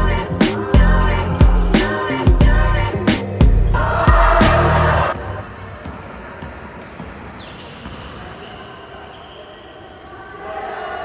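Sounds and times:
voices echoing: 3.8 - 11.0.

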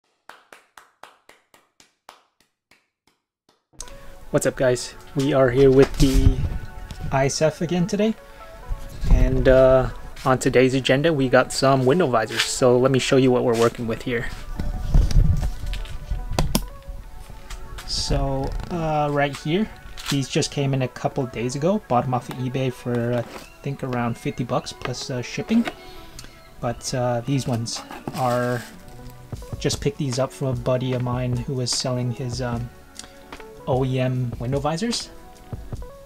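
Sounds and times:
background music: 3.8 - 36.0
plastic visors clicking: 24.8 - 26.3.

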